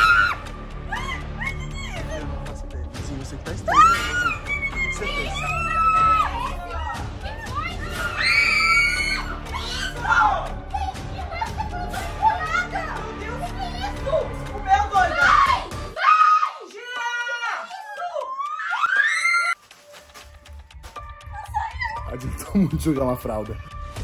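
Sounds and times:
people screaming and shrieking: 0.0 - 2.3, 3.5 - 13.0, 15.0 - 19.6
background music: 0.0 - 24.0.

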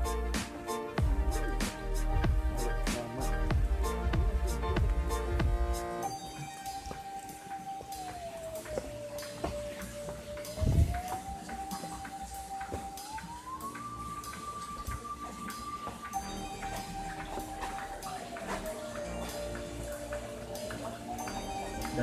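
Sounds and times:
gliding electronic tone: 1.2 - 22.0.

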